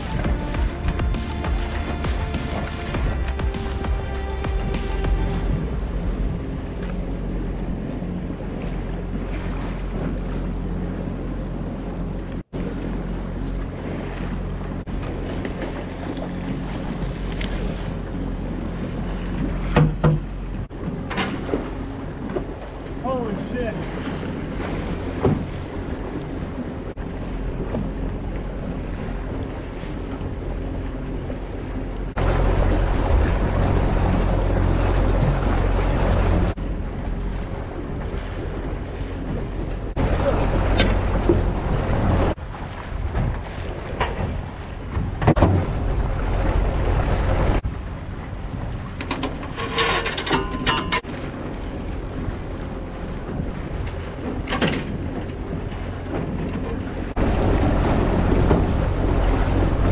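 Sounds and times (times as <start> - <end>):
knocks and clatter in boat: 0.0 - 59.9
outboard motor running: 0.0 - 59.9
water rushing past hull: 0.0 - 59.9
wind gusting on microphone: 32.1 - 49.6, 57.0 - 59.9.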